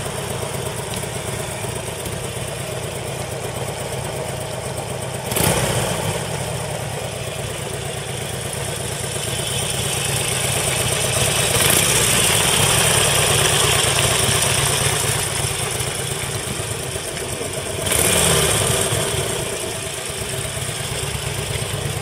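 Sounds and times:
motorcycle engine idling: 0.0s - 22.0s.

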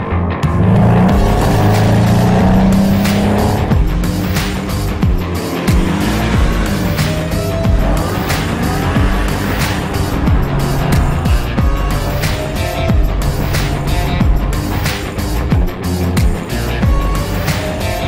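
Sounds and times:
music with a steady beat: 0.0s - 18.0s
car engines driving past: 0.4s - 16.0s.

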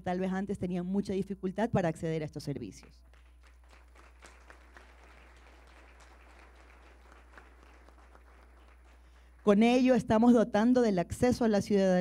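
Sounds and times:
low electrical hum: 0.0s - 12.0s
faint audience applause: 3.0s - 9.5s.

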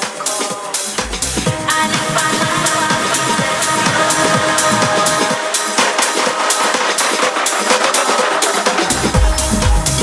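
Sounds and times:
percussion hits: 0.0s - 10.0s.

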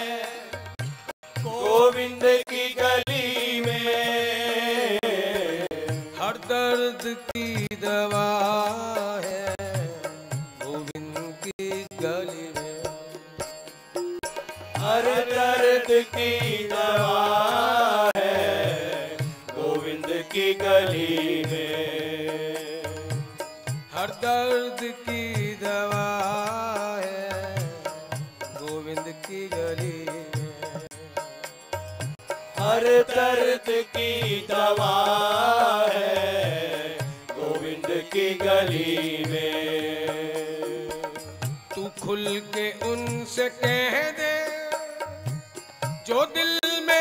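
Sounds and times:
harmonium chords: 0.0s - 47.0s
men singing devotional song: 0.0s - 47.0s.

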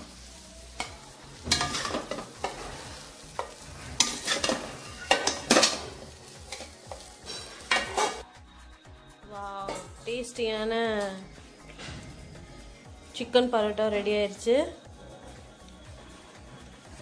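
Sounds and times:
metal spatula scraping metal pan: 0.8s - 8.2s.

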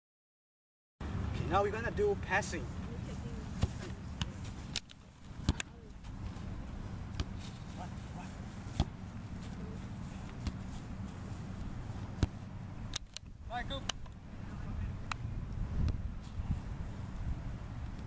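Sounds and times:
low background rumble: 1.0s - 18.0s
foot kicking ball thuds: 3.5s - 4.5s, 7.1s - 7.6s, 8.6s - 9.6s, 10.3s - 10.8s, 12.1s - 12.4s.

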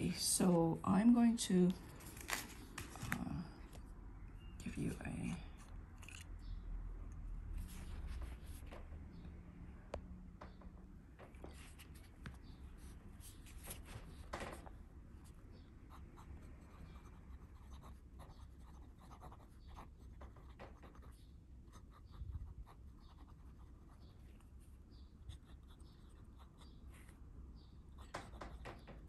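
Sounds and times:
pen nib scratching paper: 15.9s - 24.5s, 25.2s - 27.2s.

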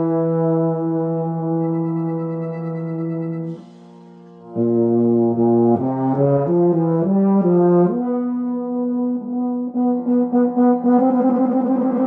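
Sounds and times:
euphonium solo: 0.0s - 12.0s.

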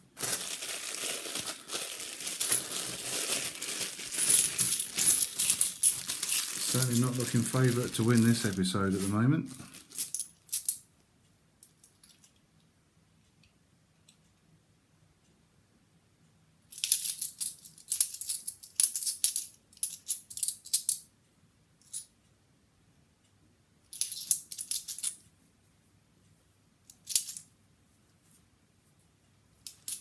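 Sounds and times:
coins clinking: 0.2s - 10.8s.

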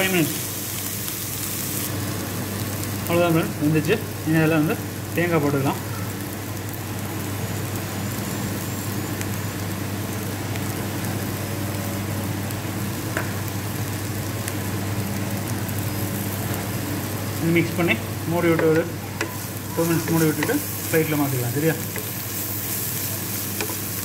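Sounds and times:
beans sizzling in hot oil: 0.0s - 24.0s.

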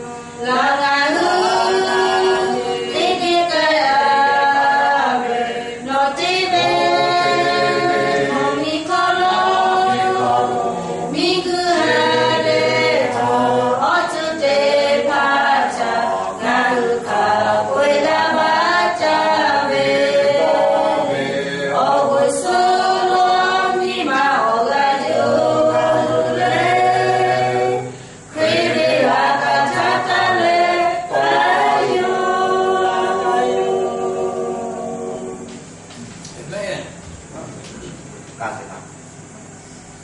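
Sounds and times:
group singing a cappella: 0.0s - 36.0s.

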